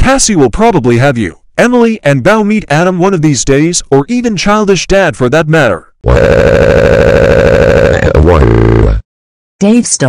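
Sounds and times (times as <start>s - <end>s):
pulsing engine-like drone: 6.1s - 9.0s.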